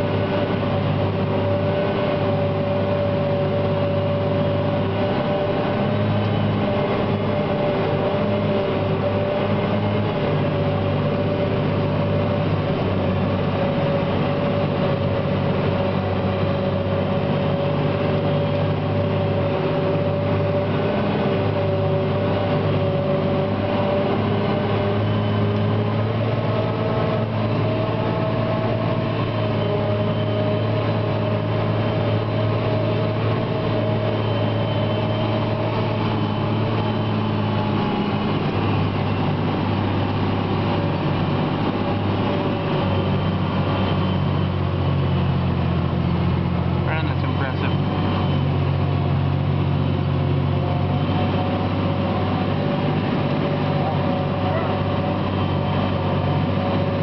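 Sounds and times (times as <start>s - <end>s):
tractor and forage harvester droning: 0.0s - 57.0s.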